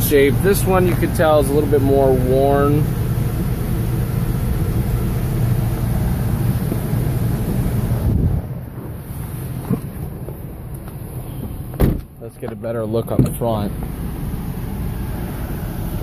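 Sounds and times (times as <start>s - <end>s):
low rumble in car cabin: 0.0s - 16.0s.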